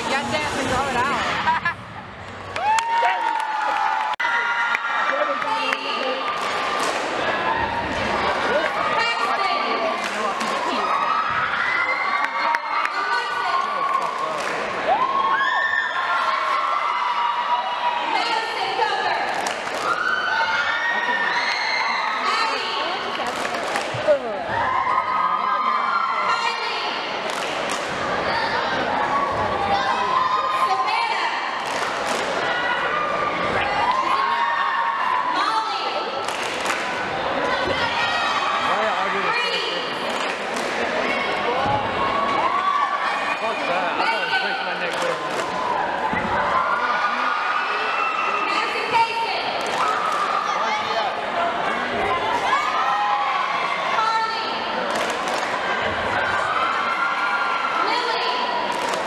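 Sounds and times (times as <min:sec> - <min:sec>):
girls shouting a cheer: 0:14.9 - 0:23.0, 0:28.0 - 0:31.6, 0:32.4 - 0:36.2, 0:36.9 - 0:40.0, 0:41.4 - 0:43.4, 0:45.5 - 0:51.2, 0:52.0 - 0:54.7, 0:56.2 - 0:59.0.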